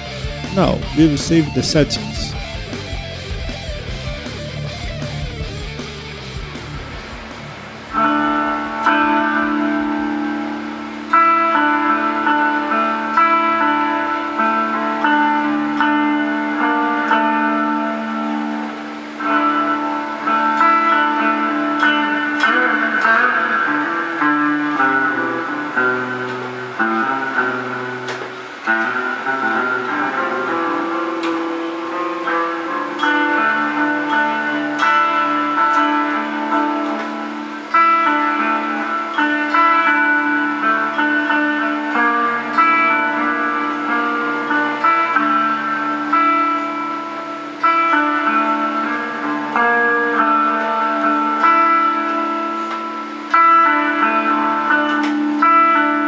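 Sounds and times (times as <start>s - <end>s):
clean electric guitar chords: 0.0s - 56.0s.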